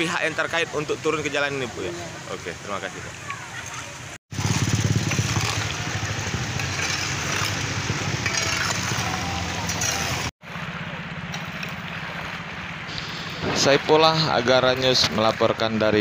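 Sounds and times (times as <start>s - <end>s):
motorcycle and car engines: 4.2s - 16.0s
hoe scraping mud on asphalt: 4.3s - 10.3s.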